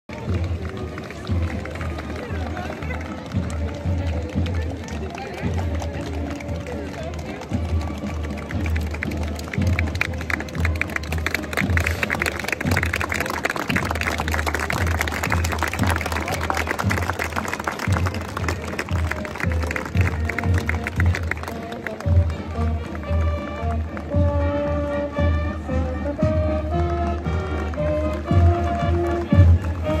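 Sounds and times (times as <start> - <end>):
crowd clapping: 0.1 - 30.0
crowd voices: 0.1 - 30.0
music playing: 0.1 - 30.0.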